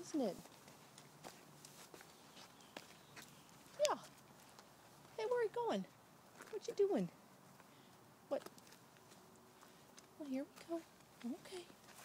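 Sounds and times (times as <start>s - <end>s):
footsteps on paved path: 0.0s - 7.7s, 8.4s - 12.0s.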